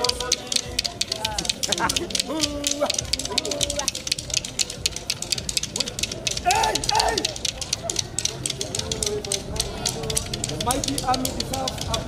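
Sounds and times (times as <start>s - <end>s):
voices singing: 0.0s - 12.0s.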